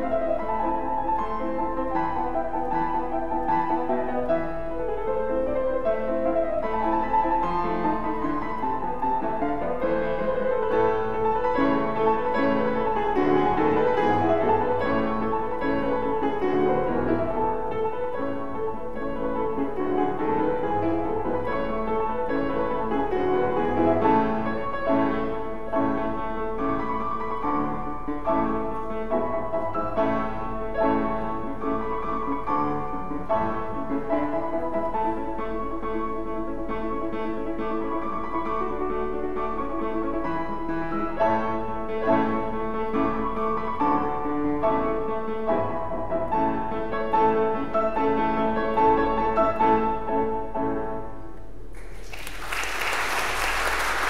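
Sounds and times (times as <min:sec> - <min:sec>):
classical grand piano: 0:00.0 - 0:54.0.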